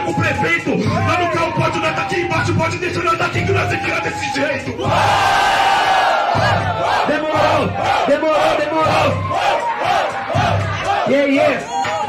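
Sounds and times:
hip-hop beat with thumping bass: 0.0 - 12.0
crowd shouting in rhythm: 4.7 - 12.0.

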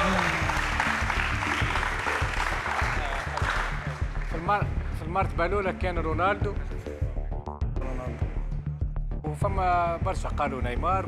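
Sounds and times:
audience applauding: 0.0 - 4.8
background music: 0.0 - 11.0.

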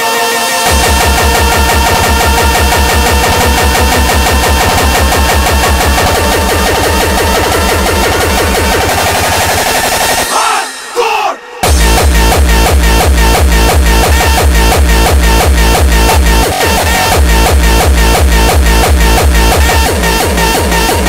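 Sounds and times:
layered synths: 0.0 - 21.0
fast kick drum: 0.7 - 8.9, 11.6 - 21.0.

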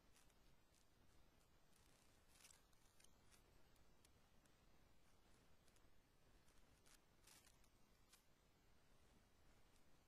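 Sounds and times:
faint hiss: 0.0 - 10.0.

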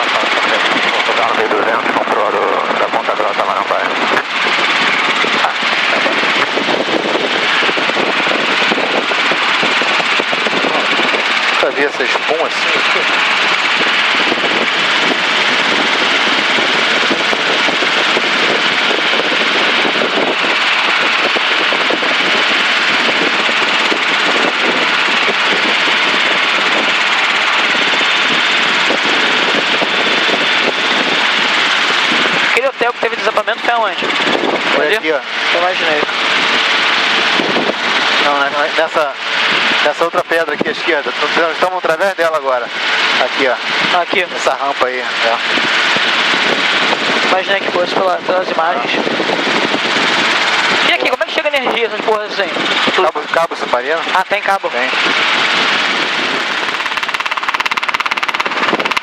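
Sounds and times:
helicopter cockpit drone: 0.0 - 59.0.

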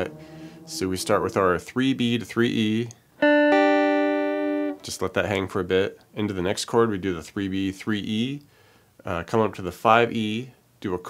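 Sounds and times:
clean electric guitar notes: 0.0 - 2.2, 3.2 - 4.9.

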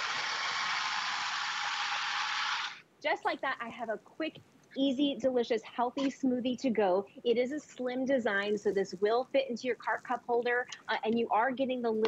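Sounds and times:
blender running: 0.0 - 2.8.

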